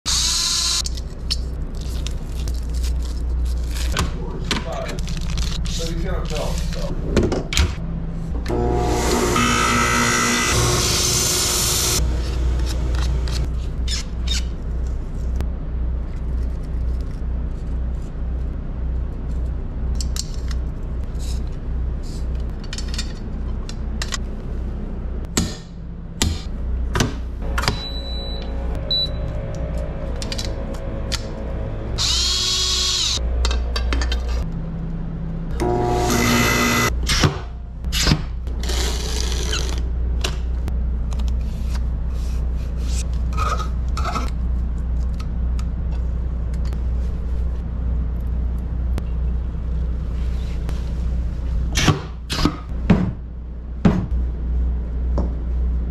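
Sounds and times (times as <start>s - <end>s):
cut-off saw cutting metal shaft: 8.5s - 13.4s, 32.0s - 33.2s, 35.6s - 36.9s
power tools running: 8.5s - 13.4s, 28.8s - 33.2s, 35.6s - 36.9s.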